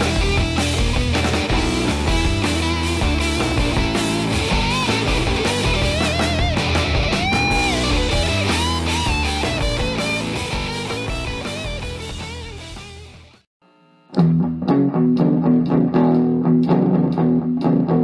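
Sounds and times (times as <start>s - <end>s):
distorted electric guitar: 0.0s - 18.0s.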